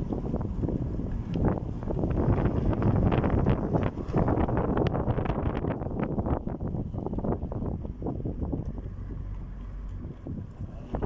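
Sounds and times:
car road rumble: 0.0s - 11.0s
wind buffeting microphone: 0.0s - 11.0s.

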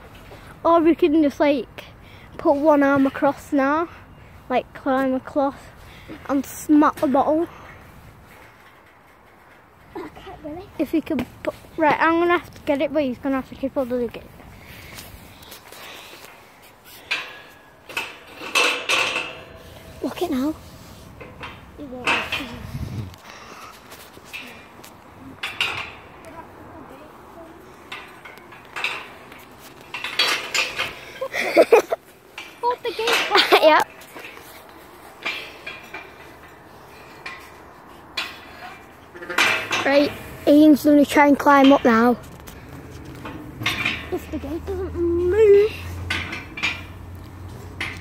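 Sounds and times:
mesh fence gate rattling: 17.0s - 23.5s, 25.4s - 26.3s, 27.9s - 48.0s.

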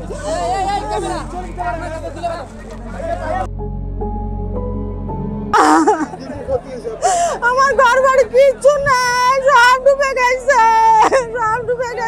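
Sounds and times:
woman wailing in grief: 5.6s - 6.2s.

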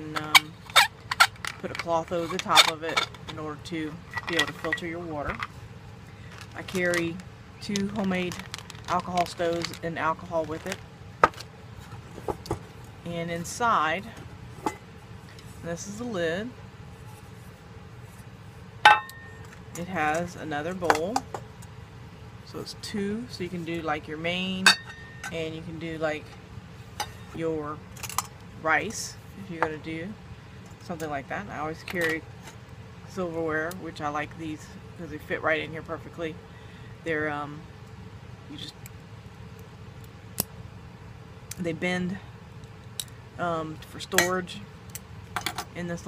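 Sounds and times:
metal lid clinking on pot: 24.7s - 25.4s.

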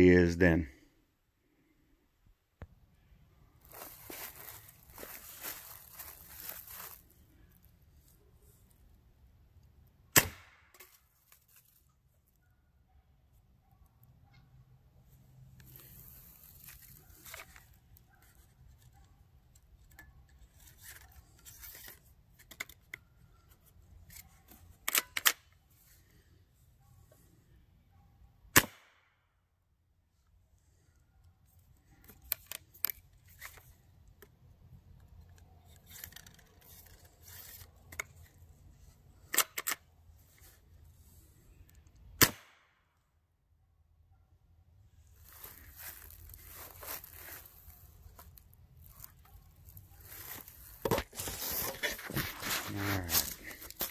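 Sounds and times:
rustling and handling noises: 3.5s - 8.8s, 10.8s - 12.4s, 15.1s - 25.0s, 30.8s - 39.3s, 45.0s - 53.9s
air gun pops: 28.5s - 29.0s.

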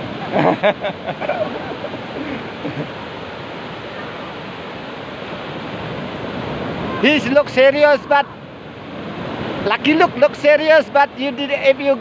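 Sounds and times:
ocean surf washing onto beach: 0.0s - 12.0s.

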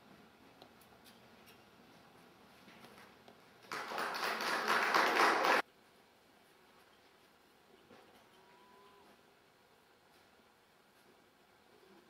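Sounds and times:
hand clapping: 2.9s - 5.6s.

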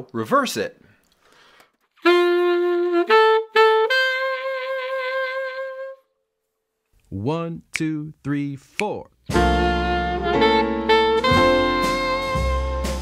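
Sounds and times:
solo saxophone phrase: 2.0s - 6.1s, 9.3s - 13.0s.

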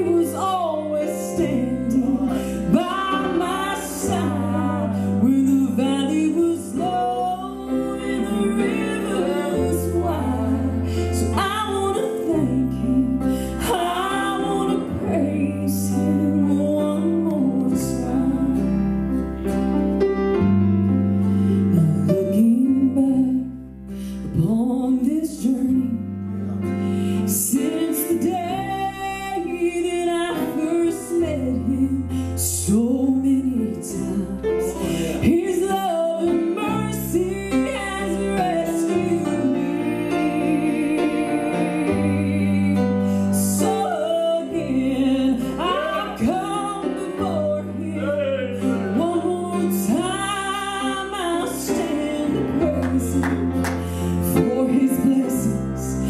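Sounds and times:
woman singing gospel song: 0.0s - 18.8s, 21.7s - 23.6s, 24.3s - 26.0s, 27.2s - 56.0s
acoustic guitar: 0.0s - 56.0s.

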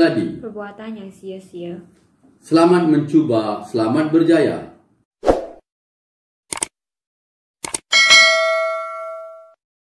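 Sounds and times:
sharp mouse clicks: 6.5s - 6.7s, 7.6s - 7.8s
bright bell ding: 7.9s - 9.6s.

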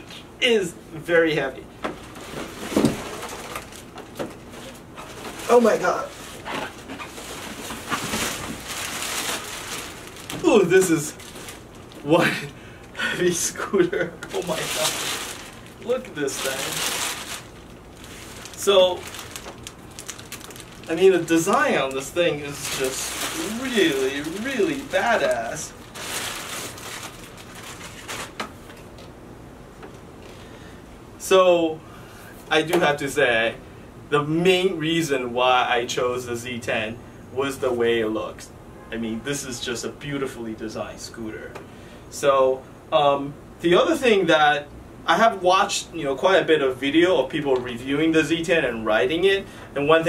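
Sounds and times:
plastic bag rustling: 2.0s - 12.6s, 13.3s - 29.0s
plastic wrapping crinkling: 2.0s - 12.6s, 14.0s - 29.1s.

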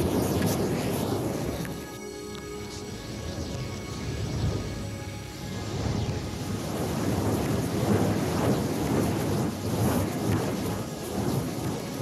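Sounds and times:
thunder-like rumbling: 5.6s - 12.0s.

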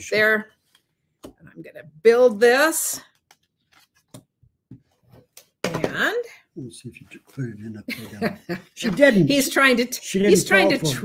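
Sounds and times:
person speaking: 6.6s - 9.4s, 10.2s - 11.0s.

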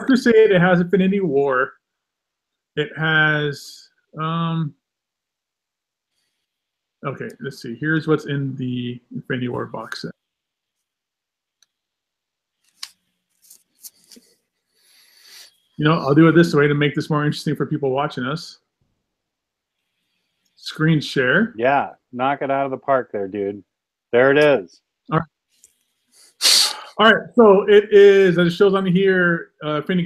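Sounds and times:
person speaking: 0.0s - 1.7s, 2.8s - 4.7s, 7.0s - 10.1s, 15.2s - 18.5s, 20.6s - 23.6s, 24.2s - 25.2s, 26.4s - 30.0s
soft rustle: 12.5s - 15.8s, 25.4s - 26.3s.

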